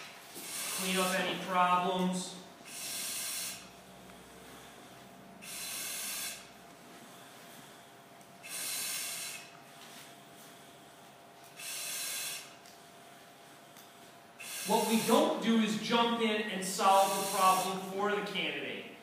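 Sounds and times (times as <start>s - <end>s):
breathing through a regulator: 0.4s - 1.5s, 2.6s - 9.5s, 11.6s - 12.6s, 13.5s - 15.5s, 16.9s - 17.9s.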